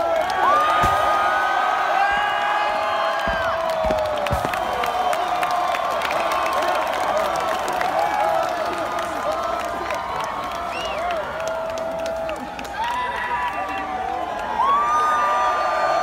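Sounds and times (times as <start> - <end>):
large crowd cheering and screaming: 0.0 - 16.0
short dull thumps: 2.1 - 5.1.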